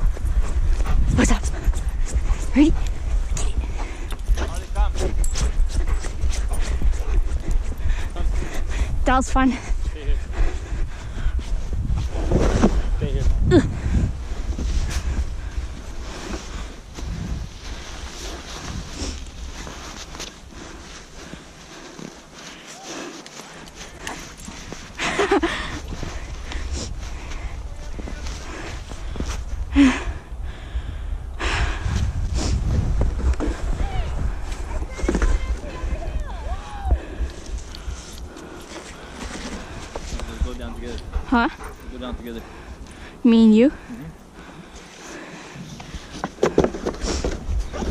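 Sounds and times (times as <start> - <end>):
wind rumbling on microphone: 0.0 - 22.6, 23.5 - 47.9
sled sliding on snow: 14.2 - 30.0, 31.6 - 41.0, 44.9 - 47.9.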